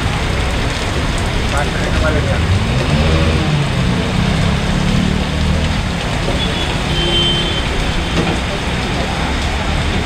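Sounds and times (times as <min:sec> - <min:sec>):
rain on a wet street: 0:00.0 - 0:10.0.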